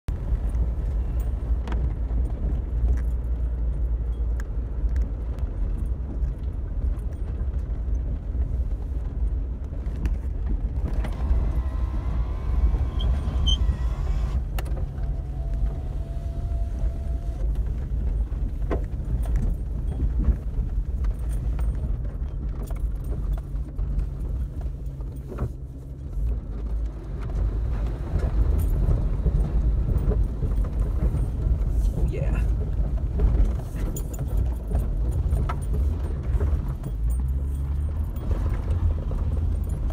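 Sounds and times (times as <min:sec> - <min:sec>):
vehicle engine rumble: 0:00.0 - 0:39.9
vehicle rattles and knocks: 0:00.1 - 0:39.9.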